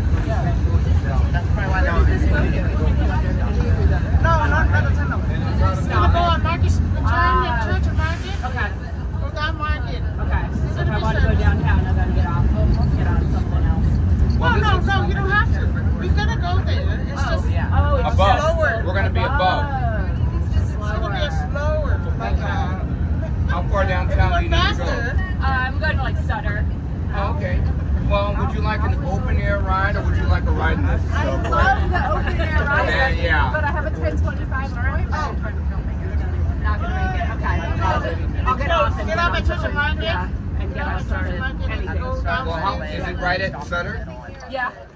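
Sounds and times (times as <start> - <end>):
passengers chattering: 0.0 - 44.9
tram rumbling along track: 0.0 - 44.9.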